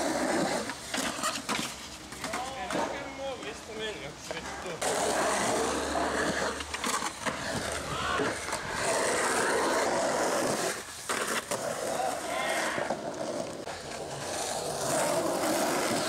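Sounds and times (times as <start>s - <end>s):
skateboard wheels rolling on concrete: 0.0s - 16.0s.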